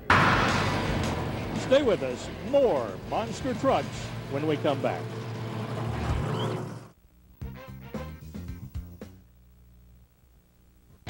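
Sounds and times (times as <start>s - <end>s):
music: 0.0s - 4.8s, 7.4s - 9.3s
monster truck engine: 0.0s - 7.0s.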